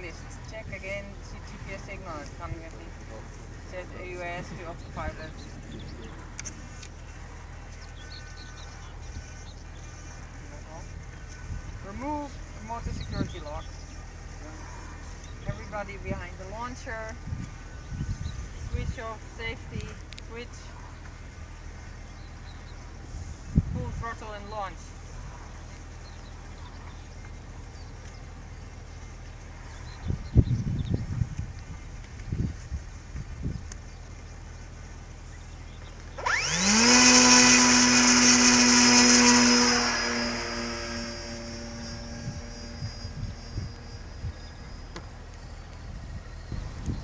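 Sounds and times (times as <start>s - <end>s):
drone propeller whine: 0.0s - 47.0s.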